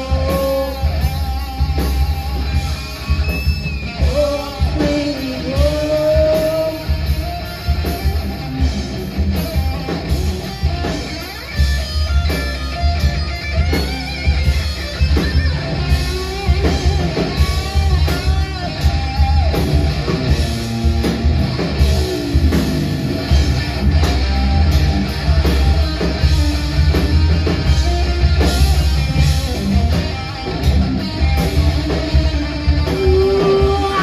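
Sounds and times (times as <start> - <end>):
drums: 0.0 - 34.0
electric guitar: 0.0 - 34.0
heavy bass: 0.0 - 34.0.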